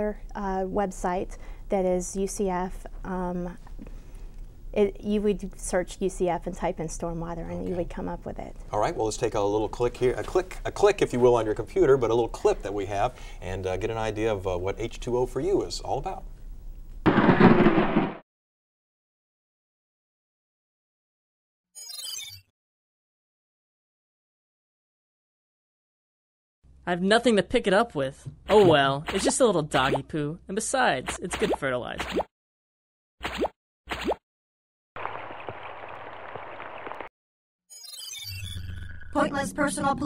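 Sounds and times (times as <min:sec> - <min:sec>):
cartoon plop sound effects: 0:31.1 - 0:32.3, 0:33.2 - 0:34.2.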